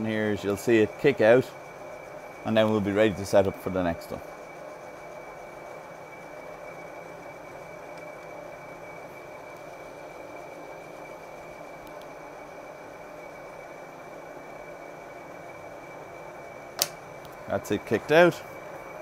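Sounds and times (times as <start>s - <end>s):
high whine of reamer: 0.0s - 19.0s.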